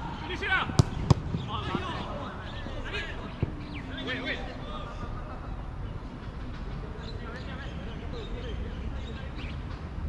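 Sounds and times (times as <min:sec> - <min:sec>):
football being kicked: 0:00.7 - 0:01.9.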